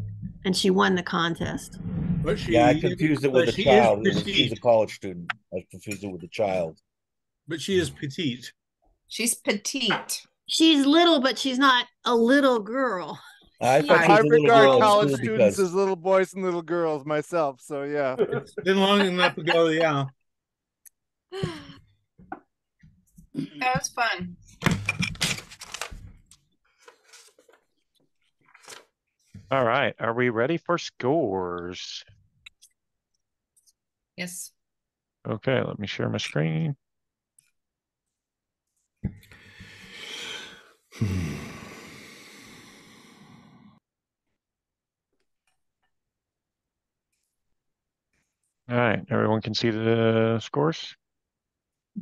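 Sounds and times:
person saying drawn-out word: 0:02.3 - 0:06.7, 0:07.5 - 0:08.4, 0:13.6 - 0:20.1, 0:29.5 - 0:32.0, 0:35.3 - 0:36.7, 0:48.7 - 0:50.8
short breath: 0:39.2 - 0:43.7
person sighing: 0:39.4 - 0:43.5.

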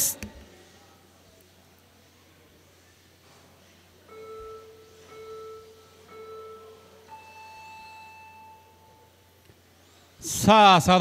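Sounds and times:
electronic countdown beeps: 0:04.1 - 0:09.3.

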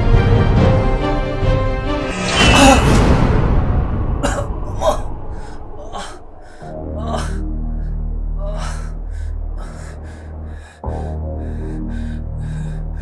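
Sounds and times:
low music drone: 0:00.0 - 0:13.0
man panting: 0:05.4 - 0:13.0.

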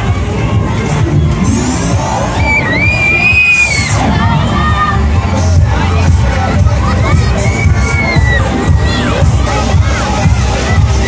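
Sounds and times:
fairground music with heavy bass: 0:00.0 - 0:11.0
children screaming: 0:02.2 - 0:05.1, 0:06.9 - 0:09.4.

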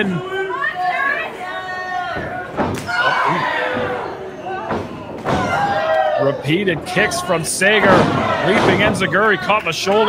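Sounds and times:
people shouting: 0:00.0 - 0:10.0.

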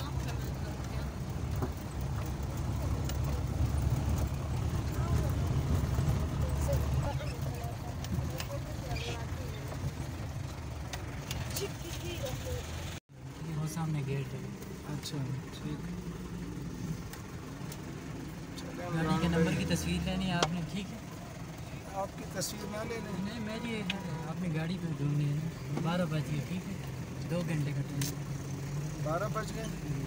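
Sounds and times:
car engine and tyres rumbling: 0:00.0 - 0:30.0.

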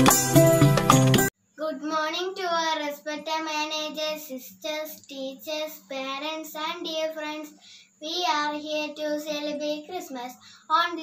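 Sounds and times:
faint steady hum: 0:01.4 - 0:11.0
girl singing: 0:01.6 - 0:11.0.

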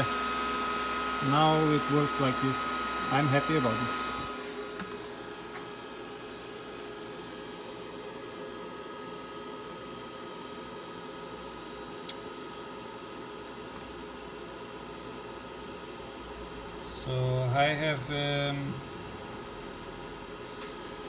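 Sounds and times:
cooling fans whining: 0:00.0 - 0:21.0
sharp click: 0:12.0 - 0:12.2.

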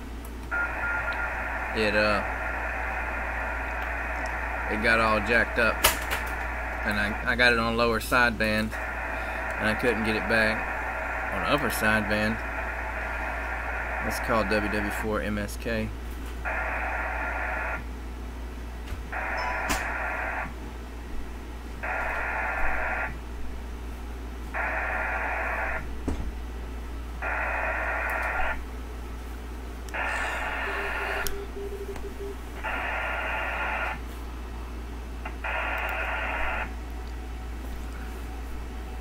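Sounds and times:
steady low hum: 0:00.0 - 0:39.0.

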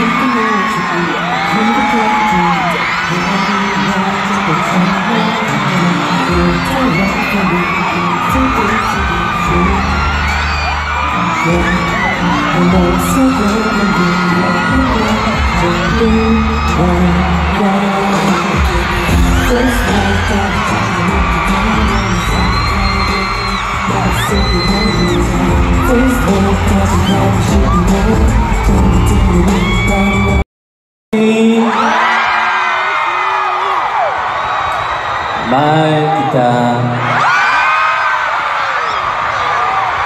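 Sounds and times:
man singing into a microphone: 0:00.0 - 0:30.4, 0:31.1 - 0:32.9, 0:35.4 - 0:37.2
backing track with heavy bass: 0:05.7 - 0:30.4.

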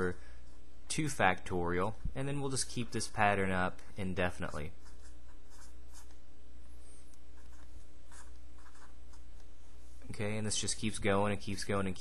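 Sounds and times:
steady low hum: 0:00.0 - 0:12.0
marker scratching on paper: 0:04.5 - 0:06.2, 0:06.8 - 0:10.0.

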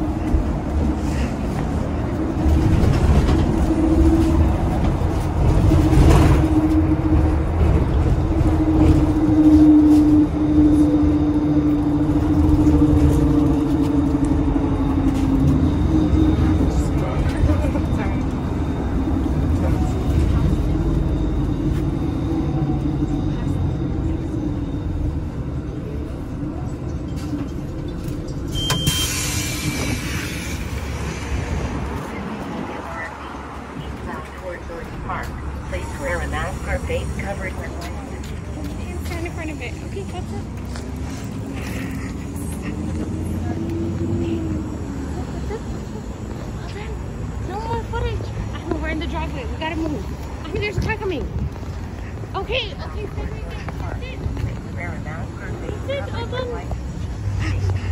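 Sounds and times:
bus engine and road rumble: 0:00.0 - 0:57.9.

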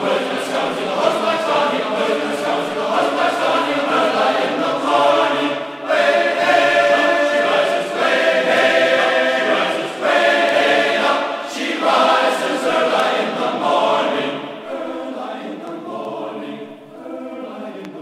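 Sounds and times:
choir singing: 0:00.0 - 0:18.0.

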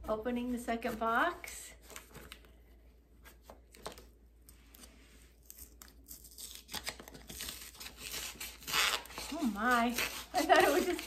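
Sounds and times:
cardboard box tearing: 0:06.1 - 0:11.0.

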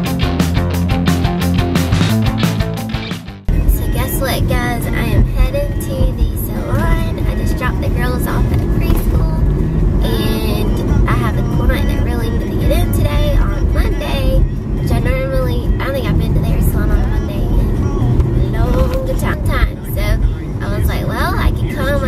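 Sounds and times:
road and engine noise: 0:03.4 - 0:22.0
woman talking: 0:03.7 - 0:22.0.

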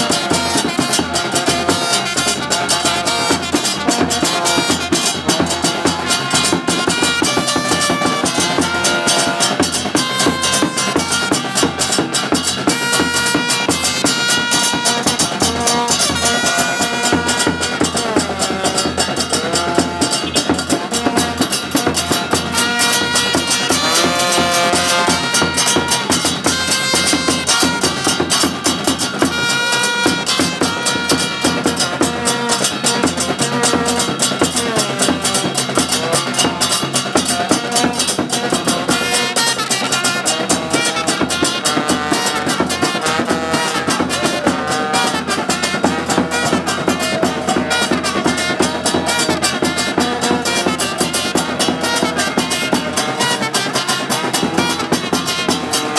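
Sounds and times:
steady drumming: 0:00.0 - 0:55.9
trumpets playing a tune: 0:00.0 - 0:55.9.

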